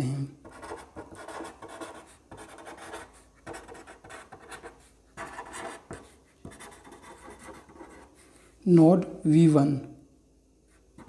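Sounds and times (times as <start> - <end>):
pen scratching on paper: 0.4 - 8.3.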